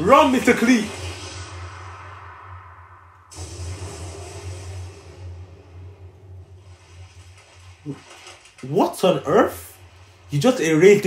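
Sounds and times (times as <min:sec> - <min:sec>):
soundtrack music: 0:00.0 - 0:08.9
rushing rumbling noise: 0:00.0 - 0:11.0.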